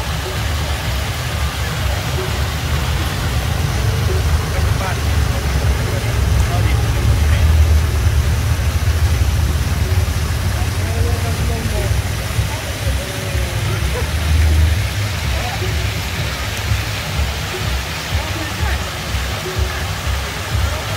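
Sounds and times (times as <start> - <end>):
faint voices: 0.0 - 20.9
fountain water splashing: 0.0 - 20.9.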